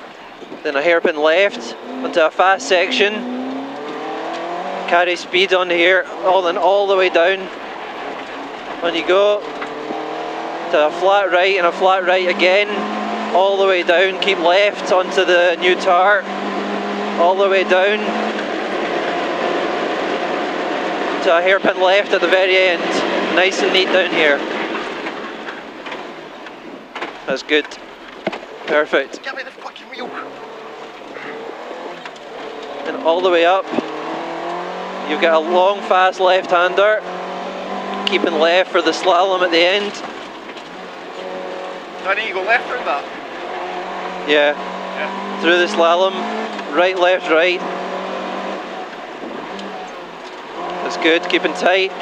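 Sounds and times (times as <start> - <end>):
car engine and road noise: 0.0 - 52.0.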